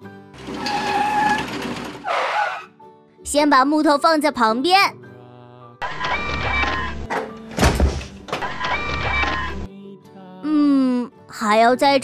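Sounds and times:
cartoon excavator whirring and clattering: 0.4s - 2.7s, 5.8s - 9.7s
light background music: 2.1s - 12.0s.

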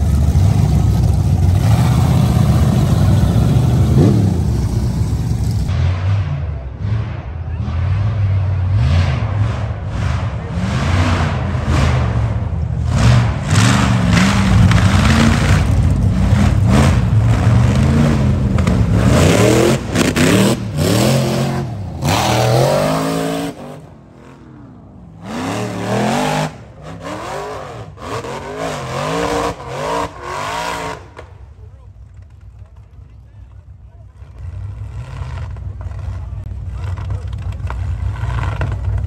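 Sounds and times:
buggy engines revving: 0.0s - 39.0s.

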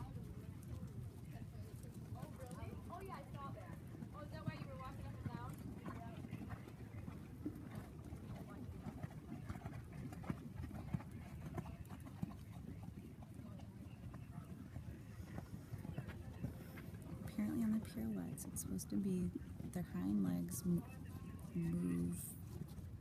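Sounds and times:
hoofbeats on sand: 0.0s - 23.0s.

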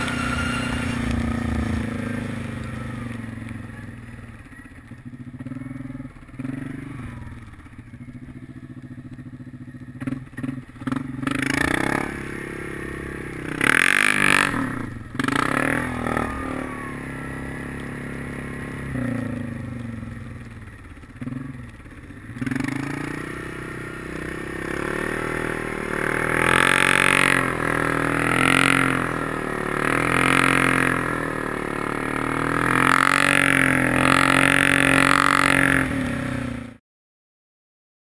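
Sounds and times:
atv engine revving: 0.0s - 36.8s.

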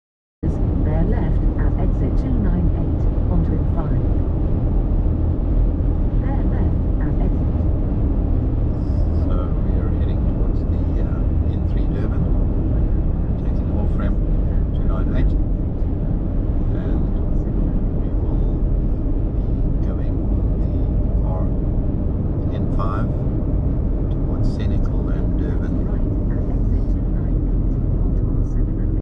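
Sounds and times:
car road and engine rumble: 0.4s - 29.0s.

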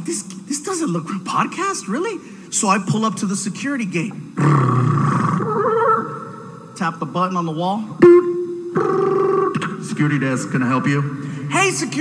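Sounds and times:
man imitating intercom beep: 8.0s - 9.9s.

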